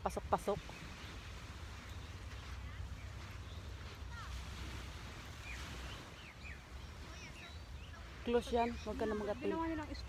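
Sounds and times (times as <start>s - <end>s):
faint bird chirps: 5.3s - 10.0s.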